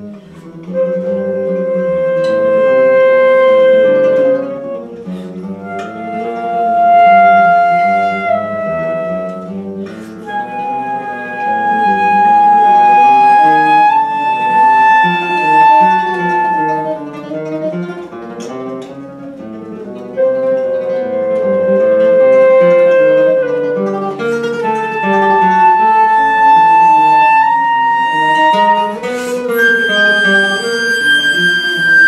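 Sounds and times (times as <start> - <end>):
flute melody: 0.0 - 32.0
plucked classical guitar: 0.0 - 32.0.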